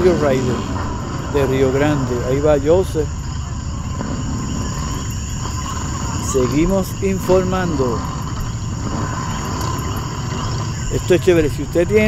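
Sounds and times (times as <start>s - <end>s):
continuous low rumble: 0.0s - 12.0s
crickets chirring: 0.0s - 12.0s.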